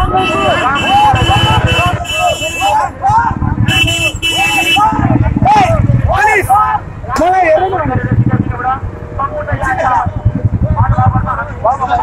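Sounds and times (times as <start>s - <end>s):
vehicle horn: 0.0s - 2.9s, 3.7s - 5.0s
vehicle engines running: 0.0s - 12.0s.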